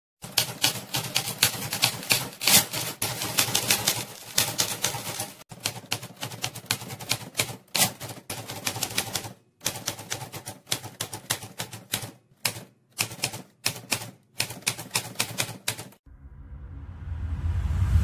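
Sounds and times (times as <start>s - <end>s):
typewriter keys striking: 0.2s - 16.0s.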